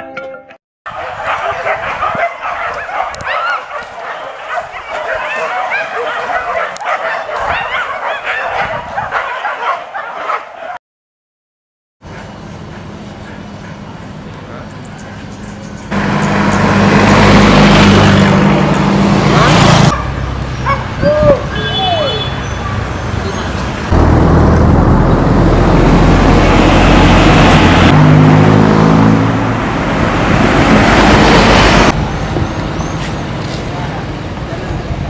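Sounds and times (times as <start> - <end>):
motorcycle engines passing: 12.8 - 35.0.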